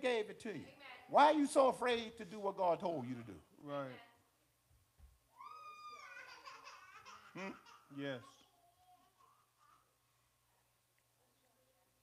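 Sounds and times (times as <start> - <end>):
child's high call: 5.4 - 6.4
child babbling: 5.4 - 10.0.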